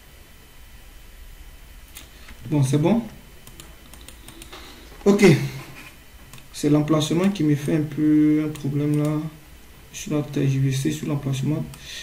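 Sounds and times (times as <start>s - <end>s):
faint low hum: 0.0s - 12.0s
computer keyboard clicks: 3.4s - 4.8s, 8.5s - 9.2s
mouse clicks: 3.4s - 4.8s.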